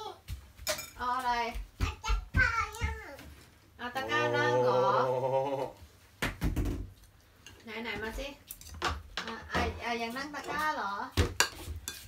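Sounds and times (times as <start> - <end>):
cutlery clinking on ceramic bowls: 0.6 - 1.0, 11.2 - 12.0.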